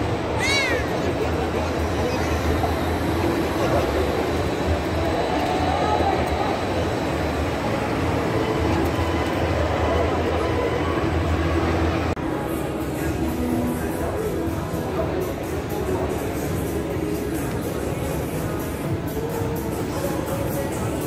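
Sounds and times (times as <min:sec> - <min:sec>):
crowd noise: 0:00.0 - 0:21.0
ride mechanical rumble: 0:00.0 - 0:21.0.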